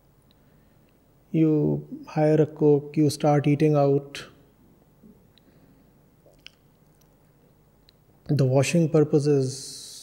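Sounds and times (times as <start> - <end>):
faint mouth click: 6.3 - 7.1.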